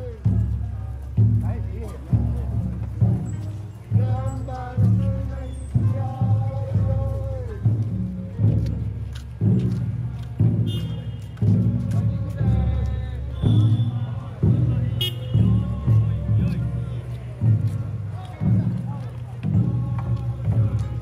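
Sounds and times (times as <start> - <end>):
large drum beaten slowly: 0.0 - 21.0
voices: 0.0 - 21.0.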